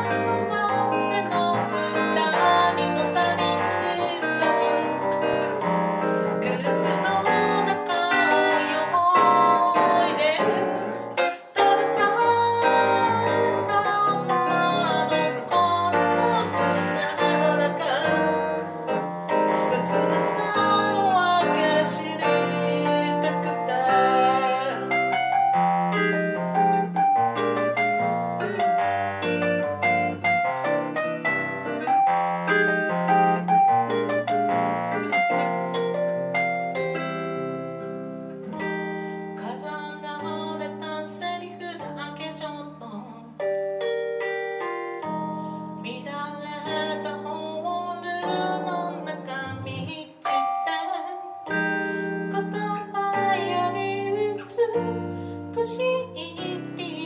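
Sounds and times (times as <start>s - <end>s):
woman singing into microphone: 0.0s - 25.4s, 38.6s - 43.4s, 45.8s - 57.0s
electric guitar: 0.0s - 57.0s
keyboard playing: 0.0s - 57.0s.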